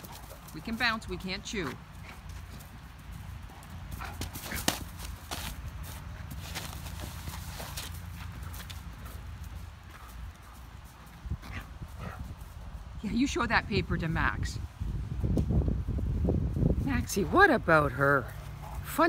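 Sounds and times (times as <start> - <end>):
paws thudding on grass: 0.0 - 13.0.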